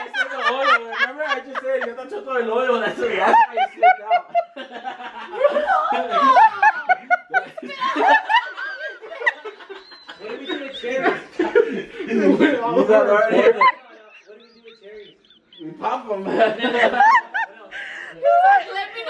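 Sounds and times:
people laughing and crying out: 0.0s - 19.0s.

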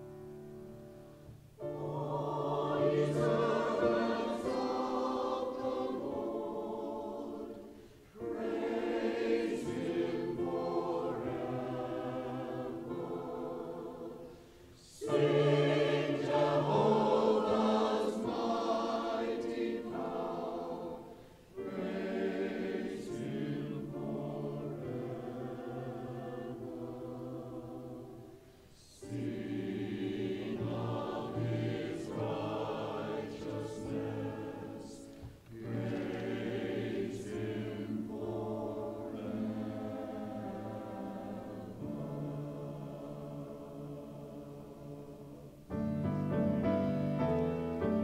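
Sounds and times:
mixed choir singing: 1.6s - 45.7s.

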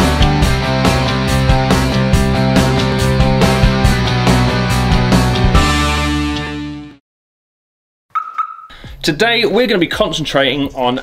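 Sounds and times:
high electronic tone with clicks: 8.1s - 8.7s.

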